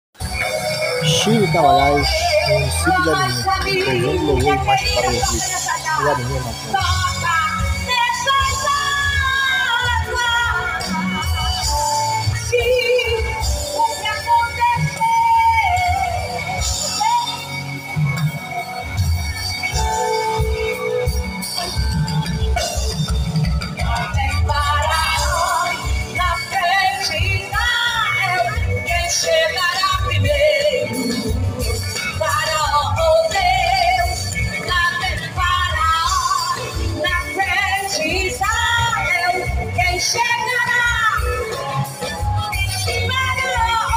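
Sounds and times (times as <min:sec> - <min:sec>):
gospel band with drums and bass: 0:00.2 - 0:43.9
woman singing: 0:02.0 - 0:17.5, 0:23.8 - 0:43.9.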